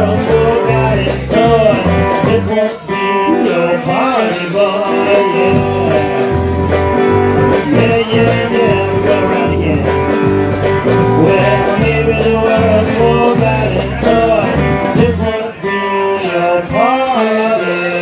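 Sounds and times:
electric bass line: 0:00.0 - 0:18.0
electric guitar with bent notes: 0:00.0 - 0:18.0.

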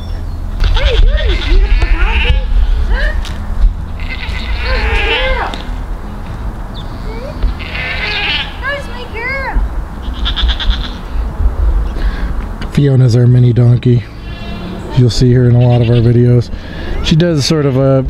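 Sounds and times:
goats bleating: 0:00.7 - 0:03.2, 0:04.0 - 0:05.8, 0:07.3 - 0:08.8, 0:10.0 - 0:11.1, 0:14.1 - 0:14.9.

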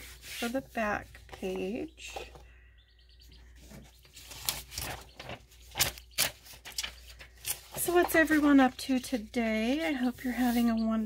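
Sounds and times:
faint bird chirping: 0:00.4 - 0:11.0
book pages rustling: 0:03.7 - 0:10.8.

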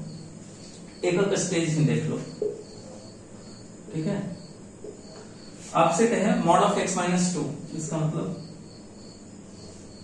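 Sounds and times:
insects chirping: 0:00.0 - 0:10.0
person speaking: 0:00.8 - 0:03.1.

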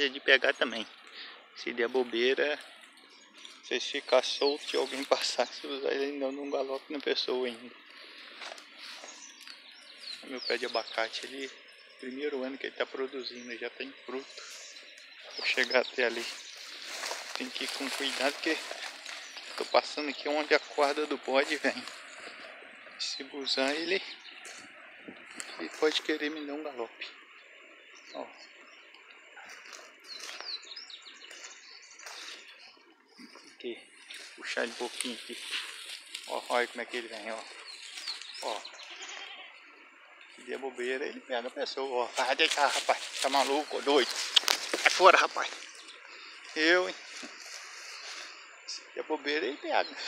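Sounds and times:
high-pitched background hiss: 0:00.0 - 0:24.4, 0:33.6 - 0:50.0
faint birds chirping: 0:00.0 - 0:50.0.

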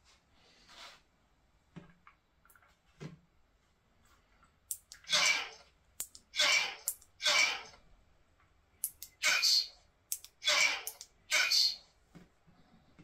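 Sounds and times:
recorded sound through small speaker: 0:08.8 - 0:13.0.

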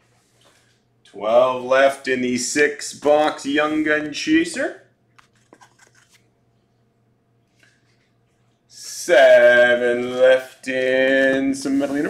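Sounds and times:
paper and cardboard rustling: 0:05.3 - 0:06.3.

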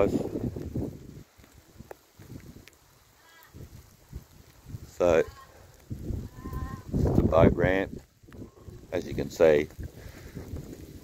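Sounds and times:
light ticks: 0:01.4 - 0:02.8.

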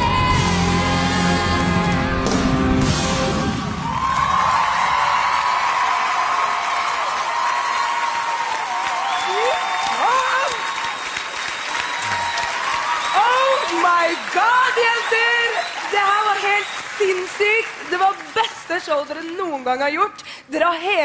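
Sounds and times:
rock band playing: 0:00.0 - 0:03.8
audience cheering and applauding: 0:00.0 - 0:19.7
crowd whooping: 0:03.5 - 0:17.6.

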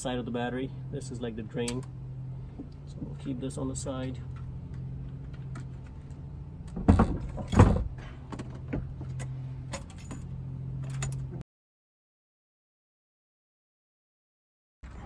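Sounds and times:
steady low hum: 0:00.0 - 0:11.4.

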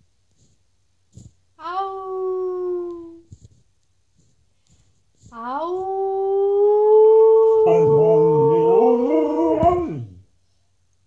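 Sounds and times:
woman imitating dog howl: 0:01.6 - 0:03.2, 0:05.3 - 0:10.1.

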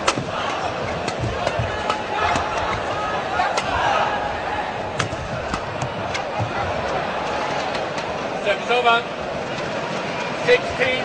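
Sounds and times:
rackets hitting shuttlecock: 0:00.0 - 0:03.8
arena crowd noise: 0:00.0 - 0:11.0.

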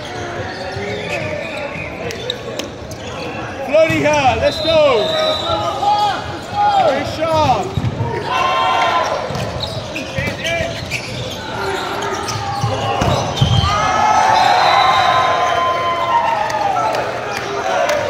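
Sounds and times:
players shouting: 0:03.7 - 0:18.0.

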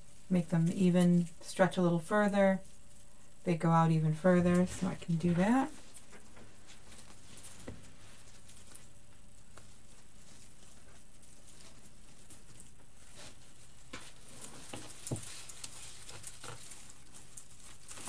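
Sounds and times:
artificial pine stems rustling: 0:00.0 - 0:18.0.

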